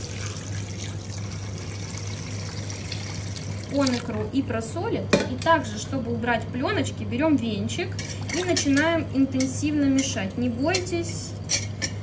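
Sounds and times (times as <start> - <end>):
liquid pouring into a bowl: 0.0 - 4.3.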